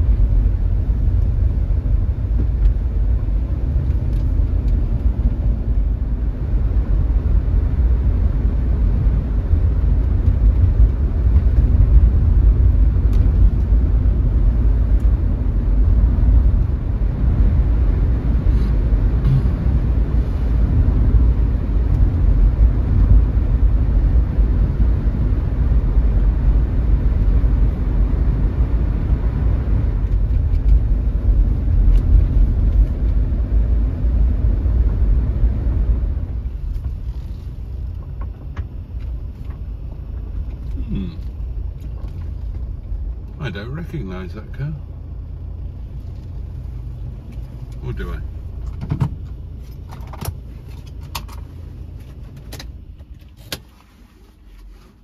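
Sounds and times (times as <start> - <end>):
car engine and road rumble: 0.0 - 55.0
tyres on wet road: 8.3 - 23.4.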